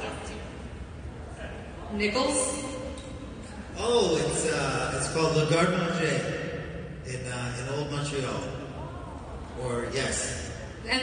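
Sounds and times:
man talking over sound system: 3.8 - 8.6, 9.6 - 10.6.

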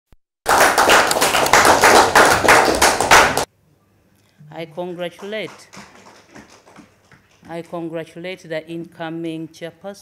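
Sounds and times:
audience applauding: 0.5 - 3.5, 5.2 - 7.4.

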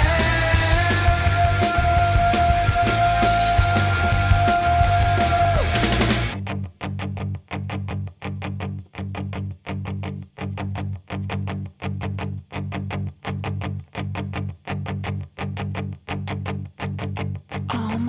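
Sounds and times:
electric guitar riff: 0.0 - 18.0.

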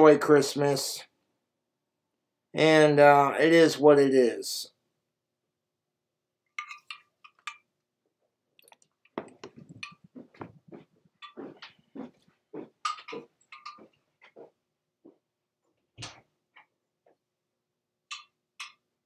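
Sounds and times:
soft knocks and footsteps: 8.1 - 17.3.

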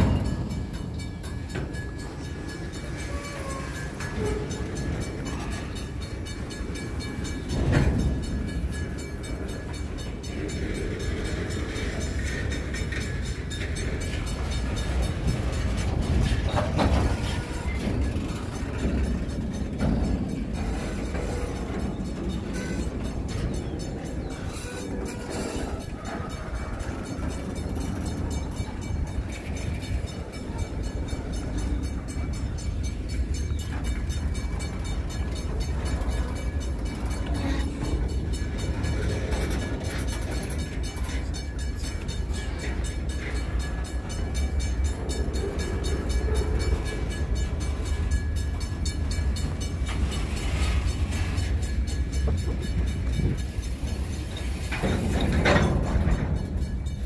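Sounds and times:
freight train wheels rumbling on rails: 0.0 - 57.0.

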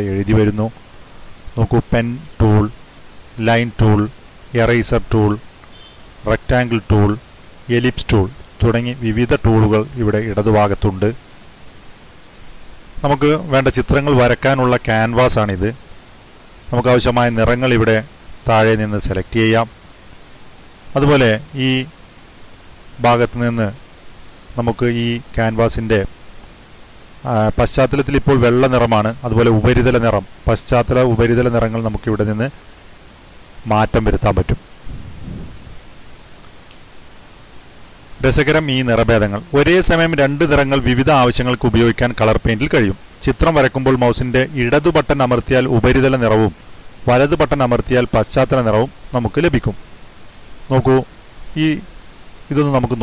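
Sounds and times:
man speaking: 0.0 - 0.8, 1.6 - 2.8, 3.4 - 5.5, 6.2 - 11.2, 13.0 - 15.8, 21.0 - 21.9, 33.6 - 34.6, 38.2 - 49.8, 50.7 - 51.9, 52.5 - 53.0
faint background hiss: 0.0 - 53.0
soft low rumble: 34.8 - 35.9.

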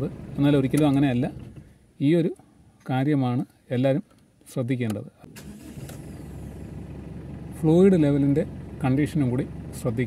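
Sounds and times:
car engine starting and idling: 0.0 - 2.8, 4.9 - 10.0.

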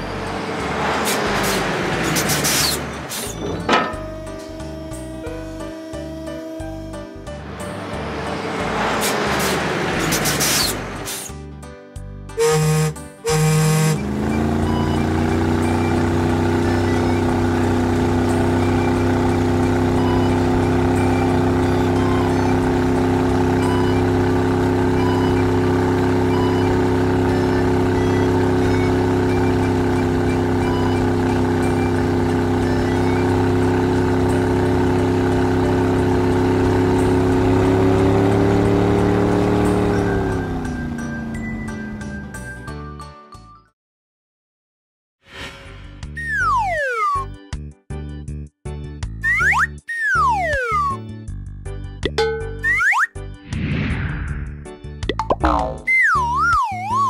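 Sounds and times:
cartoon horn honks: 12.4 - 15.2, 52.2 - 53.1, 55.3 - 57.0.

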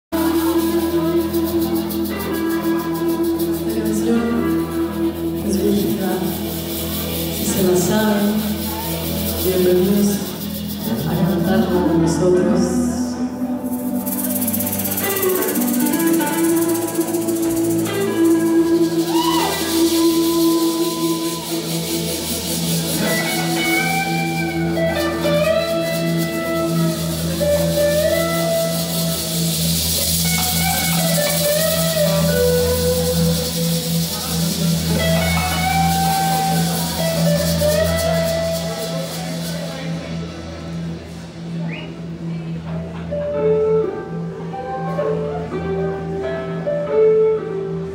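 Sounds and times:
live band playing instrumental: 0.1 - 47.9.

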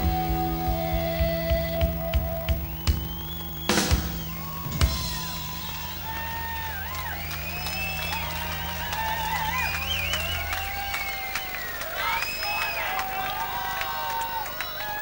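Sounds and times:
low chord ringing: 0.0 - 11.4
rock band playing: 0.0 - 11.8
crowd cheering and whistling: 0.0 - 15.0.

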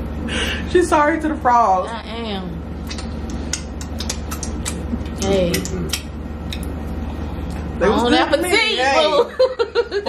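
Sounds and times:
steady low hum: 0.0 - 10.0
mouth clicks and smacks eating: 2.8 - 6.8.

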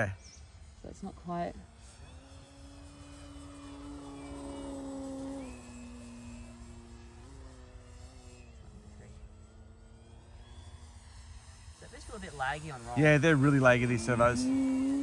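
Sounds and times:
model plane motor humming: 0.0 - 15.0.

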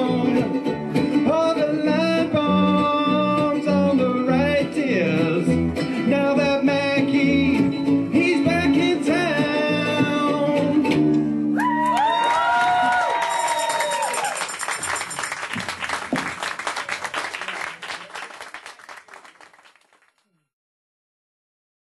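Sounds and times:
ukulele band strumming: 0.0 - 11.8, 13.4 - 16.6
audience applause and cheering: 11.6 - 20.2.

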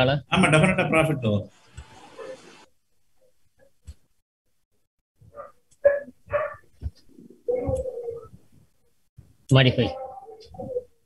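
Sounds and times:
dog barking: 5.3 - 6.7.

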